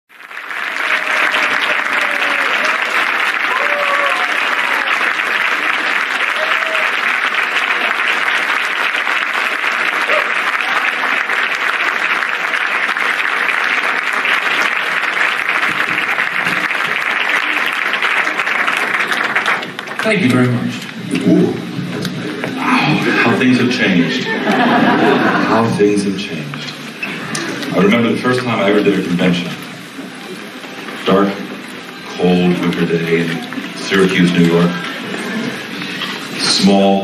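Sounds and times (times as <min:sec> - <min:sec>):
audience applauding: 0:00.1 - 0:37.0
audience whoops and calls: 0:00.2 - 0:19.8.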